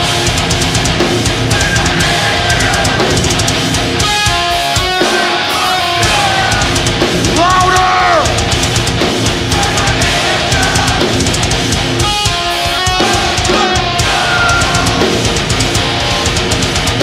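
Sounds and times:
bass guitar: 0.0s - 17.0s
distorted guitars: 0.0s - 17.0s
fast dense drumming: 0.0s - 17.0s
guitar note bending: 0.0s - 17.0s.

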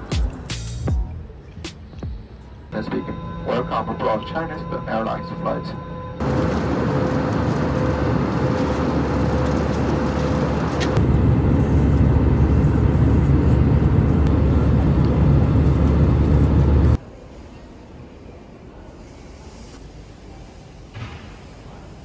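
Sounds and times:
airliner cabin roar: 2.7s - 17.0s.

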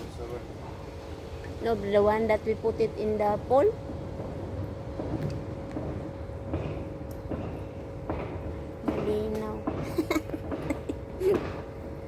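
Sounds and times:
low mechanical hum: 0.0s - 12.0s
thin constant whine: 0.0s - 12.0s.

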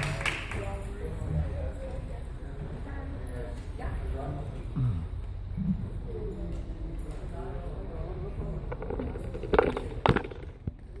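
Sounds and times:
phone knocks and rubbing: 8.7s - 10.7s.

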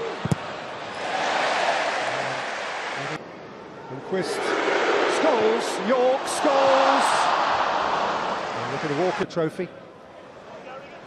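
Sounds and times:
stadium crowd roaring: 0.0s - 3.2s, 3.9s - 9.2s.

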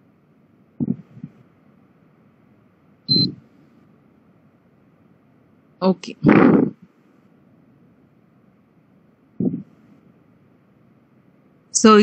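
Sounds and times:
faint background noise: 0.0s - 12.0s
short high beep: 3.1s - 3.4s.

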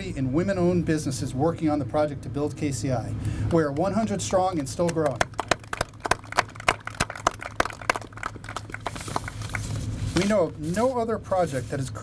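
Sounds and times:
sparse hand claps: 4.5s - 9.7s.

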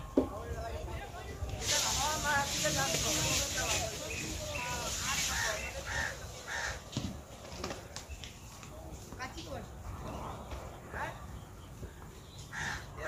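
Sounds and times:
distant voices: 0.0s - 13.0s
bird calls: 3.1s - 8.8s, 9.4s - 13.0s.

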